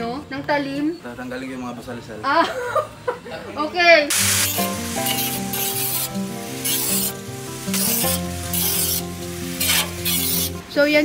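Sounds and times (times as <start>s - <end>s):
background music with held chords: 0.0s - 11.0s
angle grinder scrubbing steel drum: 4.1s - 10.7s.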